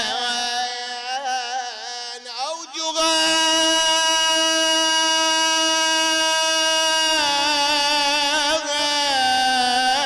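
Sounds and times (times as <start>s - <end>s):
man chanting a lament: 0.0s - 10.0s.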